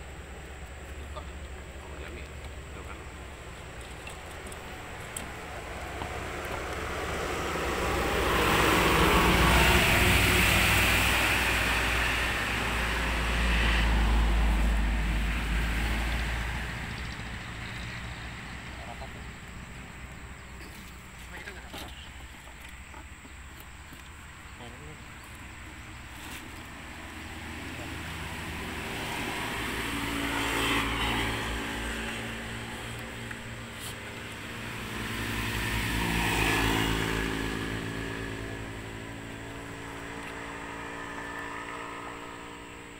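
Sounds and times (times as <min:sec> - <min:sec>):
passing motor vehicles: 0:00.0 - 0:42.9.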